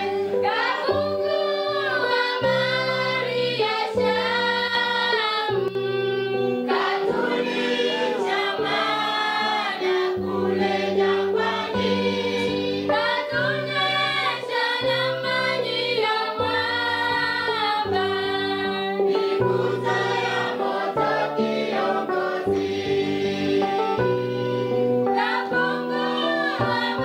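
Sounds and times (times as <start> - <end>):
choir singing gospel in harmony: 0.0 - 27.0.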